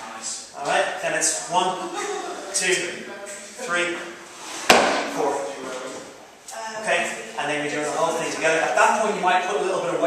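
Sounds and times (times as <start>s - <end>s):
barbell landing thump: 4.7s - 5.1s.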